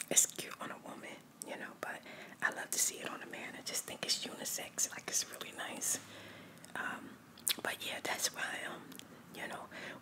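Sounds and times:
woman whispering: 0:00.0 - 0:06.0, 0:06.7 - 0:10.0.

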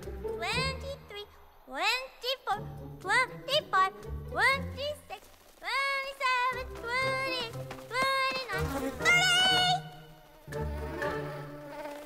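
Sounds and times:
soft background music: 0:00.0 - 0:05.2, 0:06.0 - 0:12.0
cartoon bee wings buzzing: 0:05.8 - 0:12.0.

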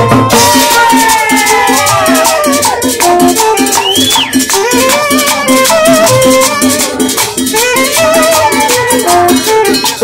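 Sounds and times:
bass line: 0:00.0 - 0:10.0
fast high percussion: 0:00.0 - 0:10.0
saxophone melody: 0:00.0 - 0:10.0.

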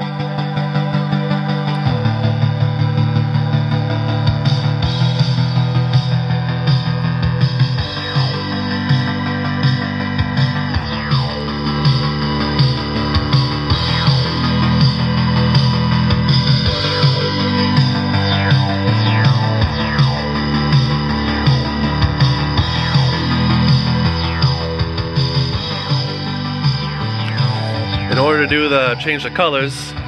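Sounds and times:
rock music through speakers: 0:00.0 - 0:30.0.

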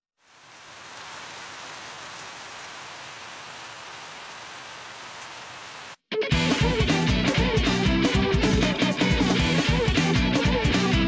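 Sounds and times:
steady static hiss: 0:00.2 - 0:06.0
music: 0:06.1 - 0:11.0.

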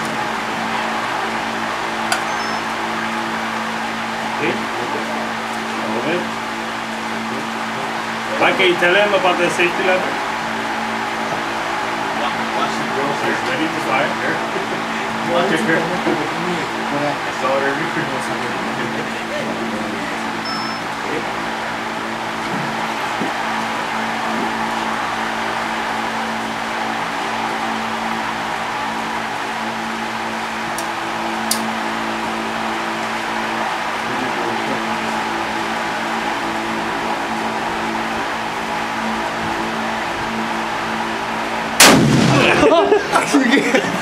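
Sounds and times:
steady hum: 0:00.0 - 0:44.0
rifle shot: 0:41.8 - 0:42.7.

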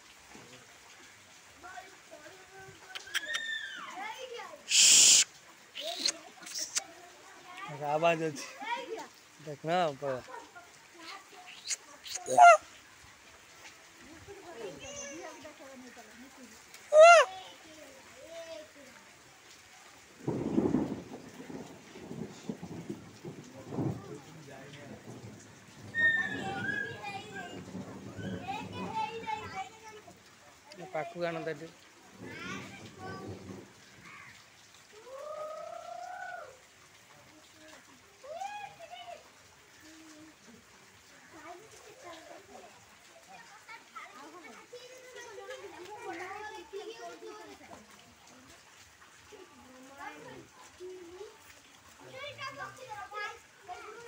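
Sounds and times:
children's voices: 0:01.6 - 0:09.3, 0:10.2 - 0:12.7, 0:14.1 - 0:15.9, 0:16.8 - 0:20.0, 0:25.9 - 0:31.2, 0:32.0 - 0:34.4, 0:37.3 - 0:54.0
voices talking: 0:04.1 - 0:12.8, 0:14.1 - 0:18.3, 0:25.8 - 0:30.2
loud high sliding call: 0:04.7 - 0:06.8
short chattering calls: 0:04.7 - 0:06.8, 0:11.0 - 0:12.6.

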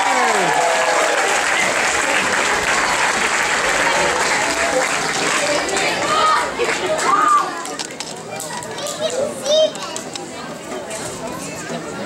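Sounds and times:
young children chattering: 0:03.6 - 0:12.0.

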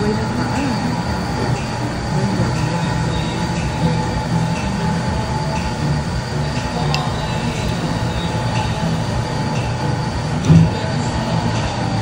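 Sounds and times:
restaurant background noise: 0:00.0 - 0:12.0.

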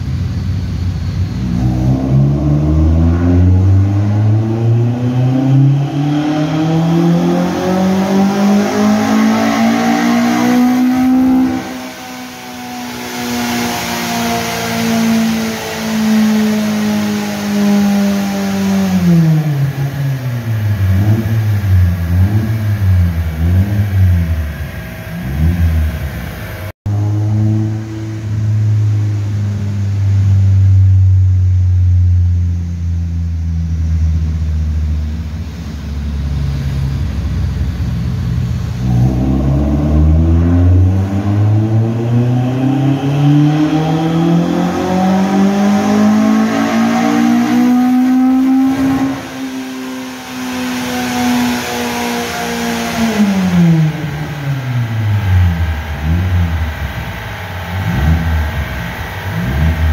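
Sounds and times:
car engine revving: 0:00.0 - 0:59.9
engine throttle blips: 0:00.0 - 0:59.9.

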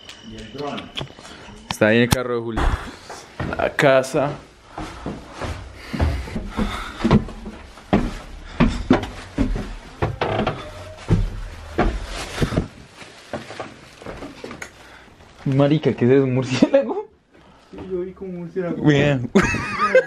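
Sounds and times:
footsteps on wooden stairs: 0:02.7 - 0:14.6.

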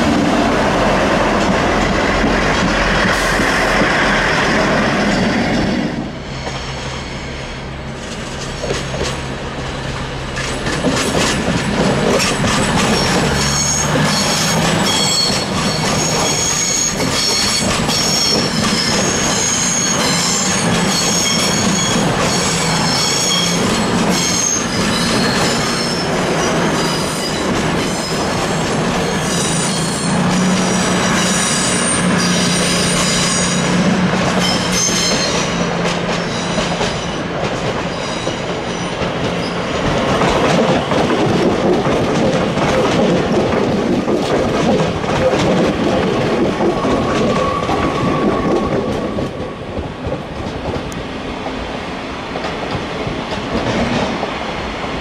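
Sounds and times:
train rumble: 0:00.0 - 0:55.0
train wheels squealing: 0:03.1 - 0:07.7, 0:11.3 - 0:39.8, 0:46.8 - 0:49.7
wheels clicking over rail joints: 0:10.3 - 0:16.2, 0:32.4 - 0:51.0.

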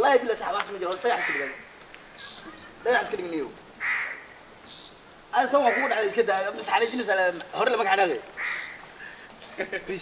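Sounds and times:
man speaking: 0:00.0 - 0:01.6, 0:02.3 - 0:03.6, 0:05.3 - 0:08.3, 0:09.6 - 0:10.0.

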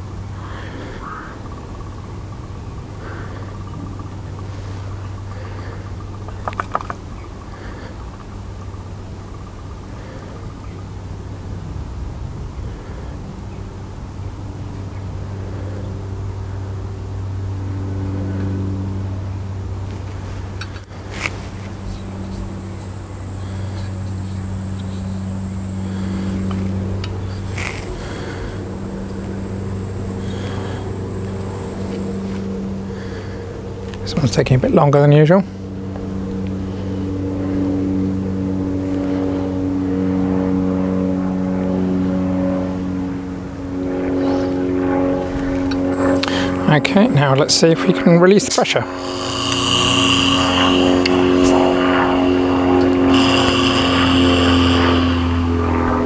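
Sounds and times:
low engine drone: 0:00.0 - 0:56.0.

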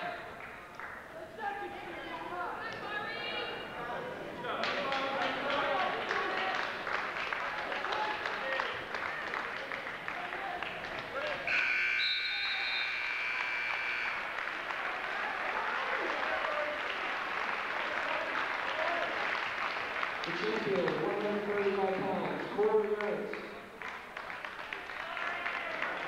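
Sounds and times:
crowd clapping: 0:00.0 - 0:01.1, 0:04.5 - 0:11.6, 0:12.9 - 0:26.0
crowd voices: 0:00.0 - 0:23.8
electric timer buzzer: 0:11.5 - 0:14.3.

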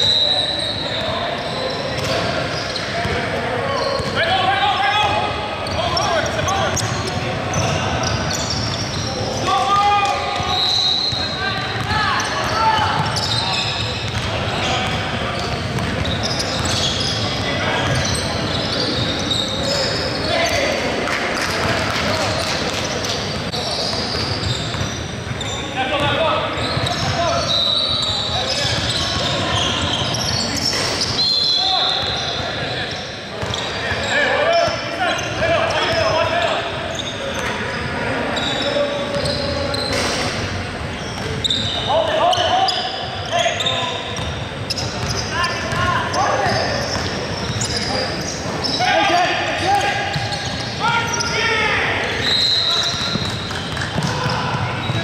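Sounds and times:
players calling out: 0:00.0 - 0:55.0
sneakers squeaking: 0:00.0 - 0:55.0
basketball bouncing on wooden floor: 0:15.8 - 0:16.8, 0:53.0 - 0:55.0.

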